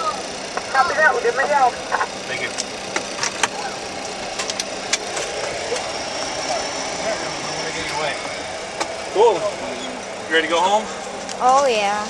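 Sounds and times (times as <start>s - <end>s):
cockpit air and fan noise: 0.0s - 12.0s.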